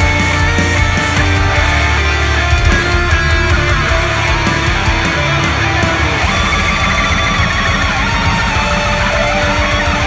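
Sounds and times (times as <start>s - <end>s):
distorted electric guitars: 0.0s - 10.0s
fast low rhythm: 0.0s - 10.0s.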